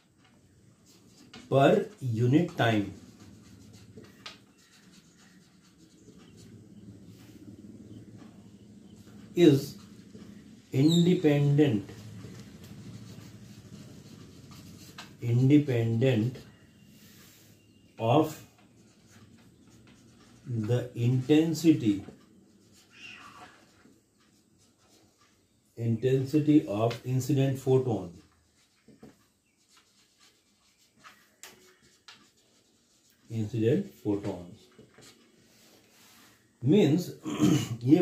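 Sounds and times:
marker pen writing on whiteboard: 0:00.0 - 0:36.5.

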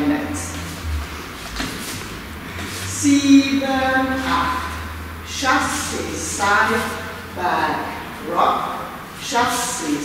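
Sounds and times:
low hum: 0:00.0 - 0:08.2.

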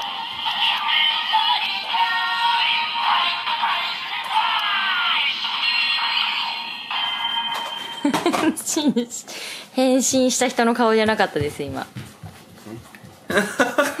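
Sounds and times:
held high tone: 0:04.8 - 0:08.3.

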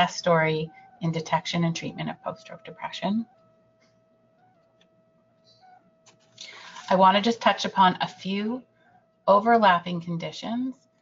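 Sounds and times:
faint electrical whine: 0:00.0 - 0:11.0
person speaking: 0:06.4 - 0:08.6.

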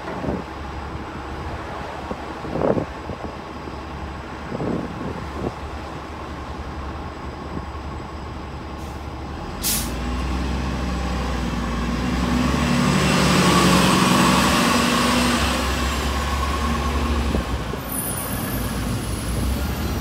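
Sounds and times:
bus engine accelerating: 0:00.1 - 0:20.0
air brake hiss: 0:08.8 - 0:10.0.

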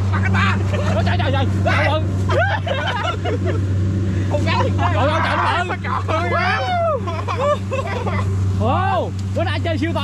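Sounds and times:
harvester engine humming: 0:00.0 - 0:10.0
men calling out excitedly: 0:04.3 - 0:07.7.

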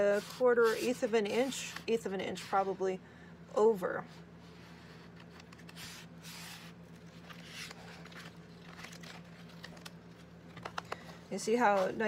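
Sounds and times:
paper pages rustling: 0:04.8 - 0:12.0.

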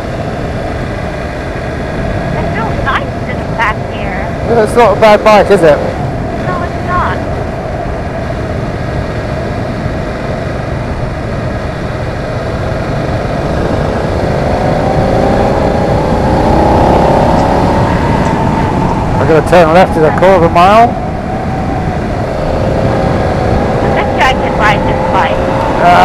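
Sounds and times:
motorcycle engine accelerating: 0:00.0 - 0:26.0
wind on microphone: 0:00.0 - 0:26.0.

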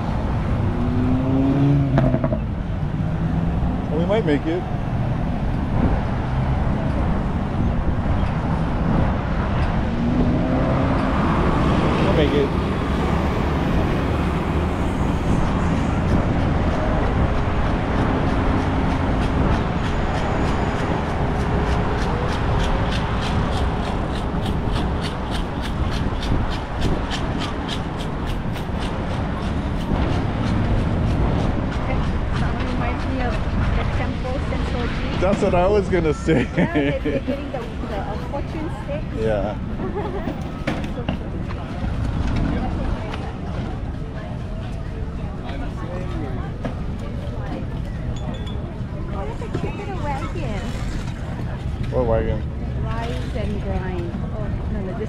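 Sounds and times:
street traffic: 0:00.0 - 0:55.0.

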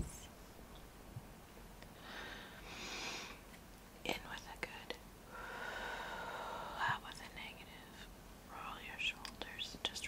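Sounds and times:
deep inhale through nose: 0:02.0 - 0:03.4, 0:05.3 - 0:06.8.

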